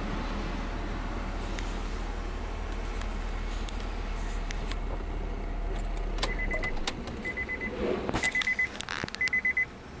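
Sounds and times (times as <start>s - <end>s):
low steady hum: 0.0s - 10.0s
car warning chime pips: 6.2s - 9.7s.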